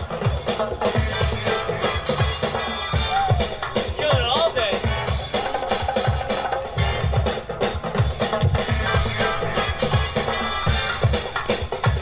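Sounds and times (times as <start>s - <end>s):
dance music over loudspeaker: 0.0s - 12.0s.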